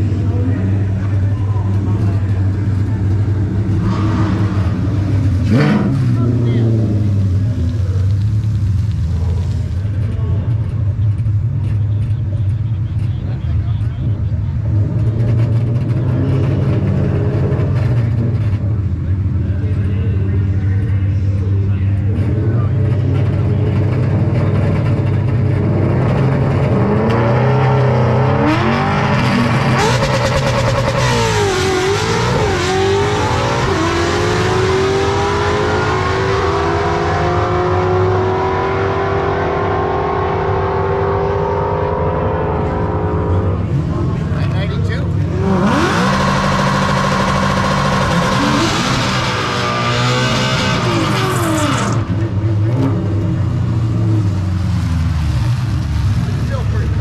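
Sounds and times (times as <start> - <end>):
engine revving: 0.0 - 7.5, 21.5 - 57.0
car engine idling lumpy: 6.1 - 25.6.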